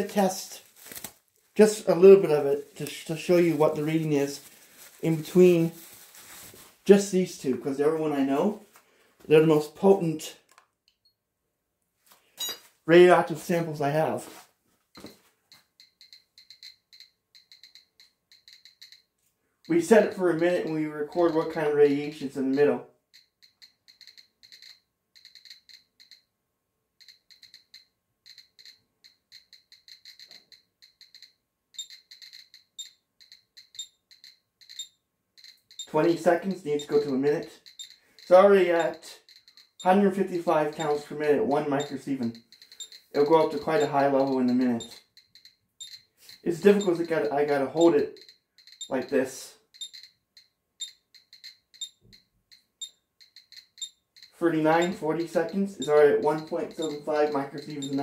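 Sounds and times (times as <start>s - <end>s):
geiger counter beeping: 15.0s - 26.3s, 27.0s - 58.0s.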